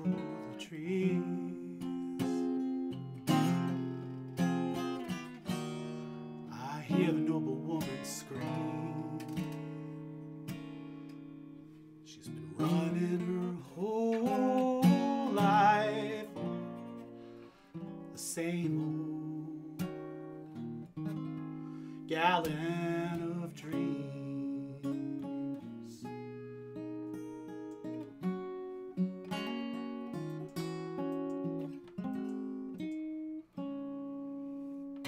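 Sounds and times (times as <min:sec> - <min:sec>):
acoustic guitar ballad: 0:00.0 - 0:35.0.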